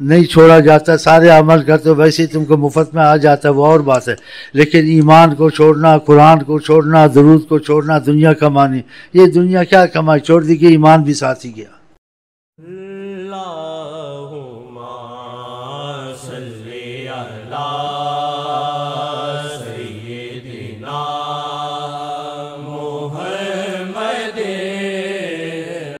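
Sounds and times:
person chanting: 0:00.0 - 0:11.2, 0:12.6 - 0:26.0.

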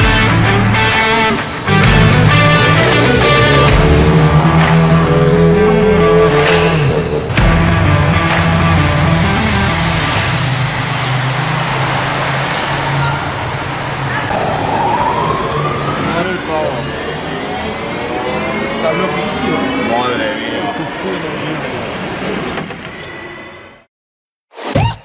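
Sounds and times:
rally car engine accelerating: 0:00.0 - 0:19.8.

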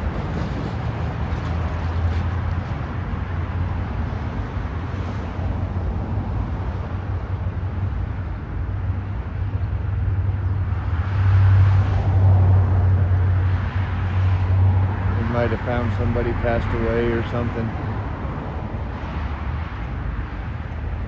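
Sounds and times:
traffic rumble: 0:00.0 - 0:21.0.

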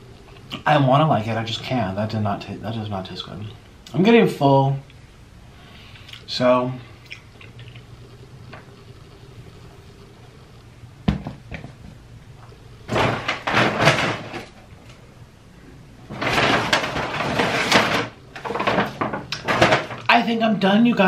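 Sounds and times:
loud rustling and handling noise: 0:12.8 - 0:15.1, 0:15.9 - 0:20.3.

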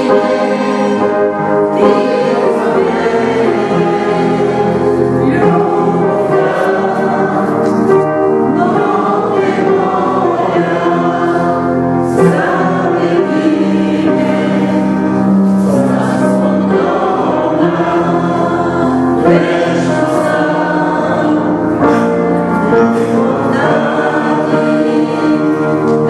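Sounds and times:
choir singing sacred music: 0:00.0 - 0:26.0.

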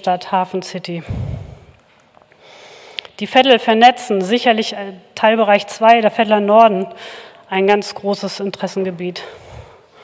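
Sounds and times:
breath hitting microphone: 0:01.0 - 0:03.2, 0:09.3 - 0:10.0.

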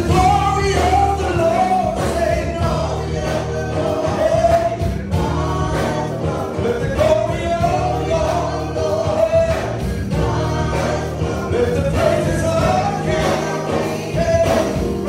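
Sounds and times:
drums steady beat: 0:00.0 - 0:15.0
vocal group singing gospel: 0:00.0 - 0:15.0.

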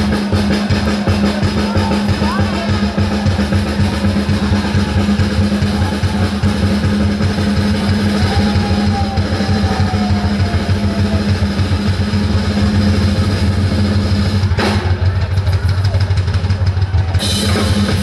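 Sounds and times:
rapid bass drum strokes: 0:00.0 - 0:18.0.

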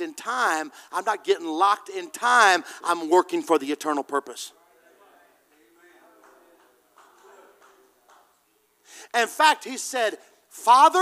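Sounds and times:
man breathing in: 0:00.7 - 0:00.9, 0:08.8 - 0:09.1
faint voices in a room: 0:04.5 - 0:09.0.

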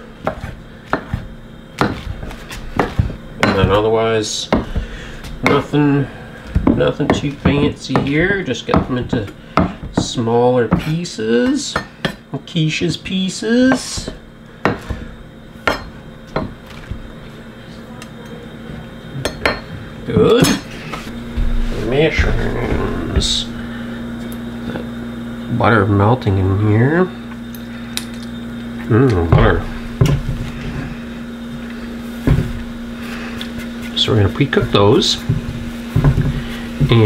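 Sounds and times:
knife chopping on wooden board: 0:00.2 - 0:03.8, 0:04.5 - 0:05.7, 0:06.5 - 0:10.9.

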